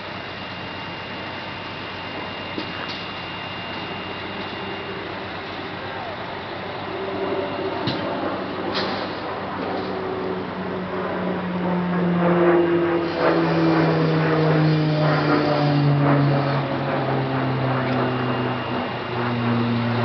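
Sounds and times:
engine running: 0.0s - 20.0s.

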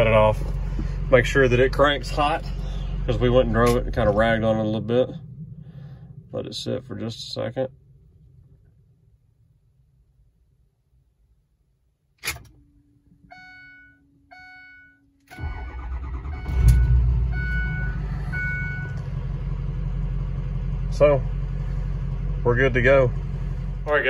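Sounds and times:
diesel engine cranking: 0.0s - 8.9s, 15.2s - 24.0s
diesel engine idling: 0.0s - 9.3s, 15.4s - 24.0s
steady hum: 0.0s - 11.0s.

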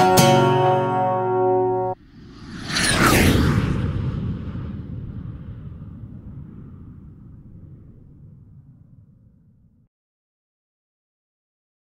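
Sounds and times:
guitar chord ringing: 0.0s - 2.0s
low rumble: 2.0s - 9.9s.

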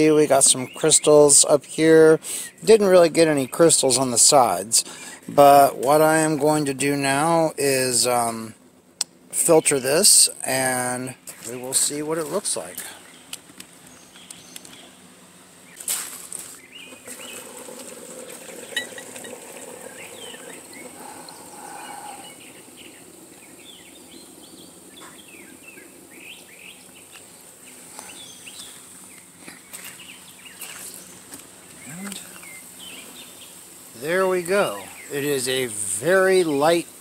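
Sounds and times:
filtration rig humming: 0.0s - 37.0s.

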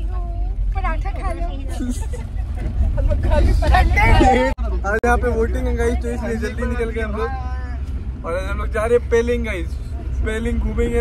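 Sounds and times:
car engine and road rumble: 0.0s - 11.0s
people talking: 0.0s - 11.0s
people laughing: 1.6s - 4.6s.

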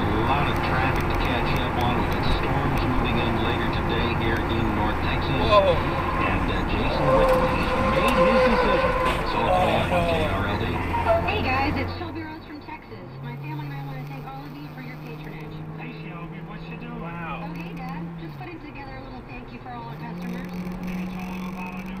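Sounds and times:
car engine and road hum: 0.0s - 22.0s
faint talk: 0.1s - 22.0s.

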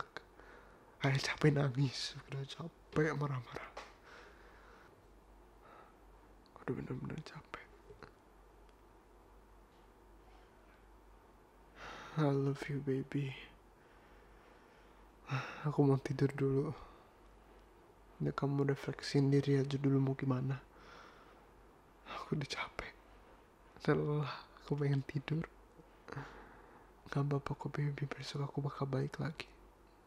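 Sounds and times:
man whispering: 0.0s - 0.4s, 1.0s - 4.0s, 6.4s - 8.2s, 12.1s - 13.6s, 15.2s - 17.1s, 18.2s - 20.7s, 22.0s - 23.0s, 23.8s - 26.3s, 27.0s - 29.6s.

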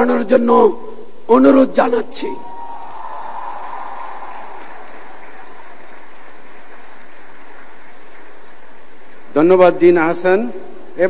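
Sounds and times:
audience applauding: 2.8s - 9.0s.

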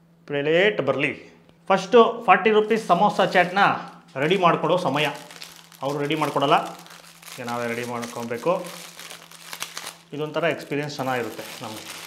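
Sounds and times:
person talking: 1.7s - 8.9s, 10.1s - 12.0s
foil wrapper crinkling: 2.8s - 12.0s.

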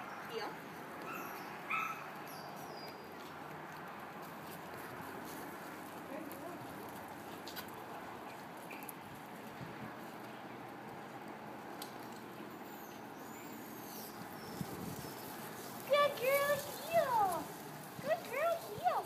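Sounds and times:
light footsteps: 2.9s - 12.4s, 14.1s - 19.0s.

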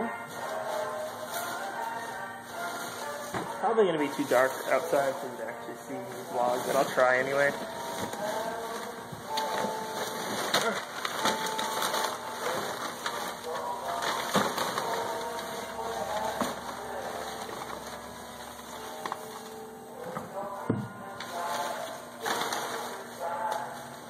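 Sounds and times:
plastic bag rustling: 0.0s - 24.0s.

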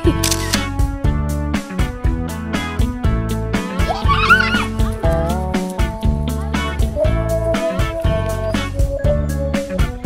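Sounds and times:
background music with steady beat: 0.0s - 10.0s
wavering cry: 3.8s - 4.8s.

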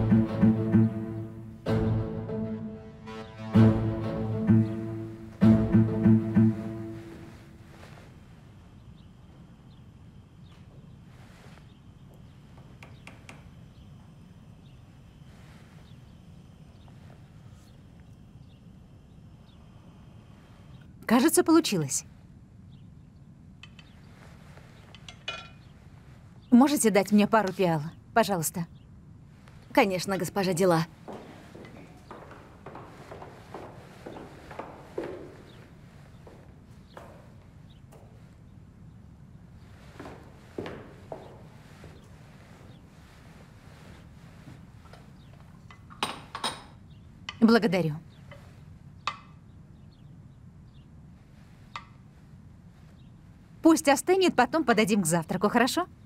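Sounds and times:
crockery clinking: 25.0s - 25.6s, 45.7s - 46.8s.

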